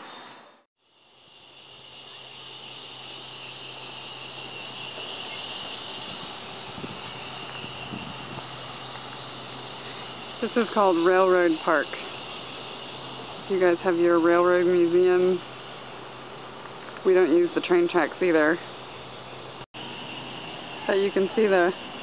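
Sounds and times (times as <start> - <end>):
high hiss: 0.8 - 22.0.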